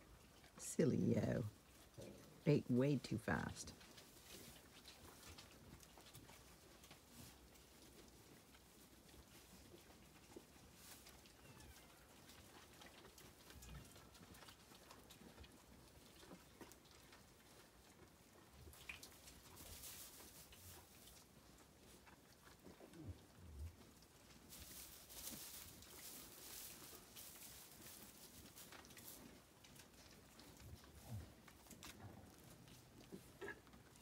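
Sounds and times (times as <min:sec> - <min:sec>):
rustling of straw: 0:18.7 - 0:33.3.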